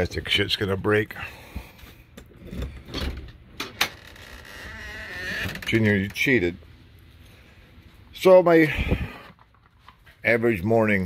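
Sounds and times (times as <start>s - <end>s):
door opening with creak: 2.4s - 6.2s.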